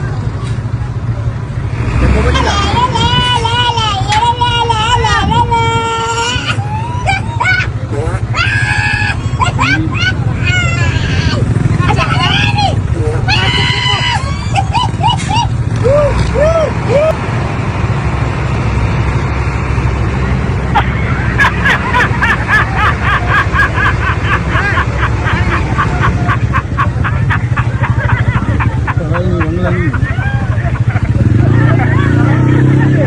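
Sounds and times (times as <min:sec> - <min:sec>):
road traffic: 0:00.0 - 0:33.0
truck engine running: 0:00.0 - 0:33.0
voices and shouts: 0:02.0 - 0:17.2, 0:24.4 - 0:33.0.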